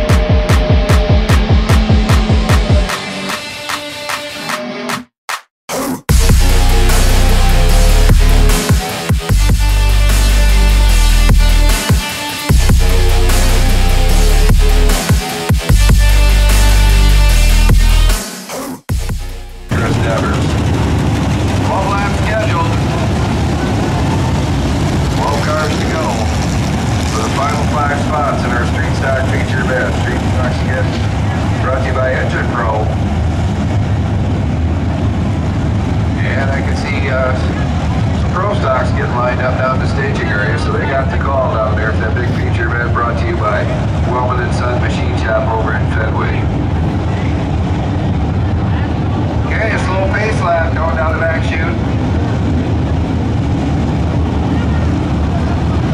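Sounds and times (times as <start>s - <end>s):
race car engines: 6.3s - 18.1s, 19.5s - 55.9s.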